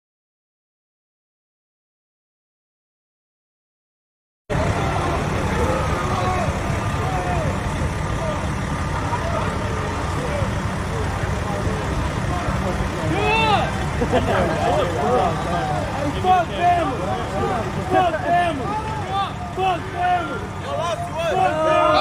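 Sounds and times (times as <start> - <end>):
loud shout: 4.5 - 10.4, 12.3 - 22.0
heavy low rumble: 4.5 - 21.9
people talking and calling out: 4.5 - 22.0.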